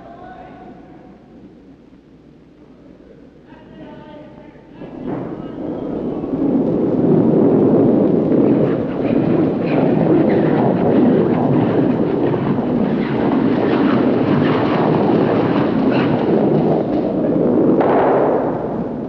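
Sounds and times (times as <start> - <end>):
curling stone rumbling on ice: 4.8 - 19.0.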